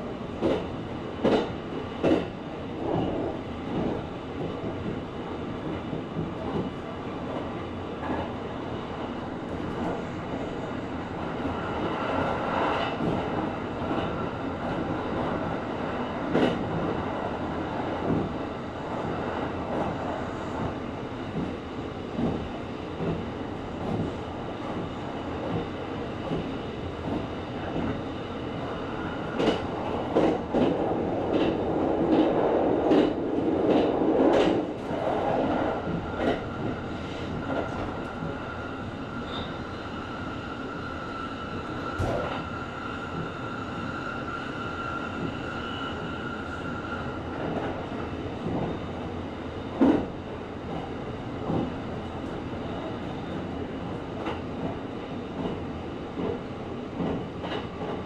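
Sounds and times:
train wheels rumbling on rail: 0.0 - 58.0
clacks over rail joints: 0.4 - 2.3, 50.7 - 51.7, 57.0 - 58.0.

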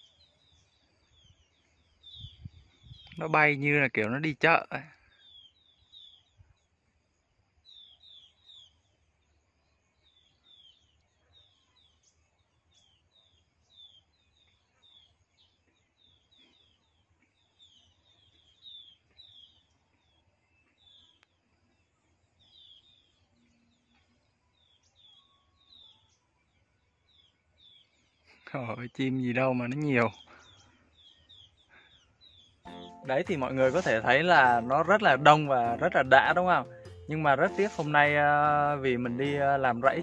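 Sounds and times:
birds chirping faintly: 0.0 - 40.0.

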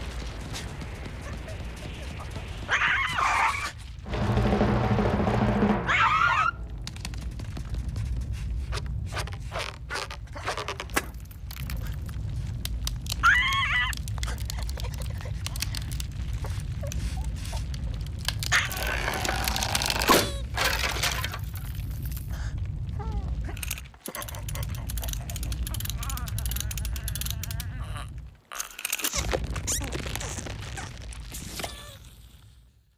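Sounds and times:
steady low rumble: 0.0 - 18.5, 20.3 - 28.5
clicks and cracks: 6.6 - 32.6.

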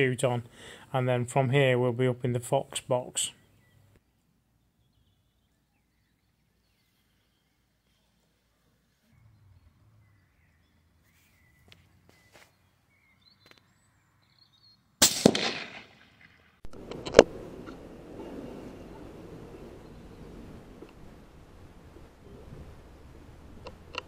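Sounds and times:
faint bird chirps: 3.3 - 14.9
rifle shot: 15.0 - 17.3
small clicks: 16.7 - 17.8, 23.6 - 24.0.

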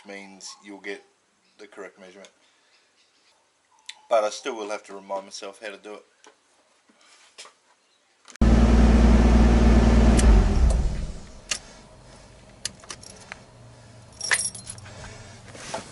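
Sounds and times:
car engine running: 8.4 - 11.4.

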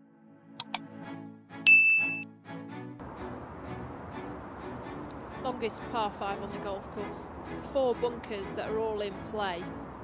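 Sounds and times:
soft background music: 0.0 - 10.0
mouse double click: 0.6 - 0.8
notification bell ding: 1.7 - 2.2.

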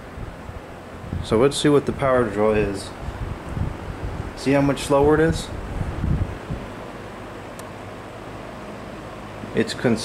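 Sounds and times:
box fan air rushing: 0.0 - 10.0
low motor hum: 0.0 - 10.0.

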